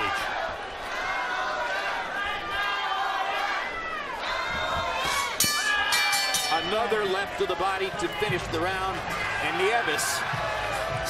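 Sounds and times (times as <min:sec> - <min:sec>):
crowd shouting and cheering: 0:00.0 - 0:11.0
boxing ring bell ringing: 0:05.4 - 0:07.2.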